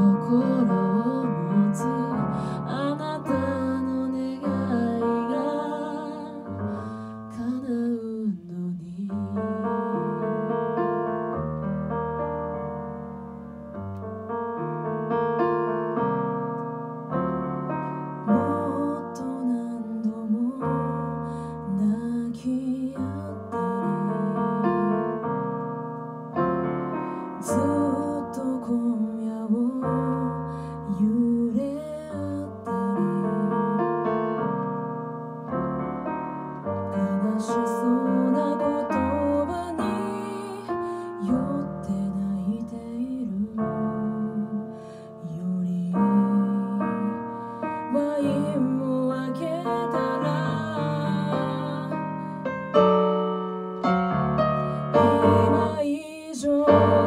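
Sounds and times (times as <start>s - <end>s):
woman singing a slow ballad: 0.0s - 10.7s, 18.2s - 25.2s, 27.2s - 34.1s, 36.8s - 52.5s, 54.8s - 57.0s
piano chords: 0.0s - 57.0s.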